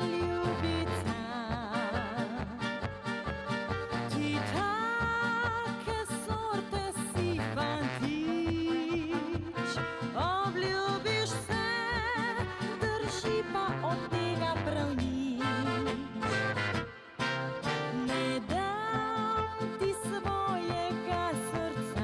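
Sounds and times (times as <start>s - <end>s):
trumpet and clarinet melody: 0.0s - 5.6s, 7.0s - 22.0s.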